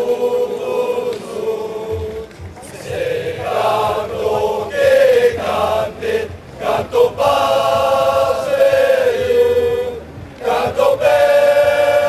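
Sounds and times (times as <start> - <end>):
group singing an anthem: 0.0 - 12.0.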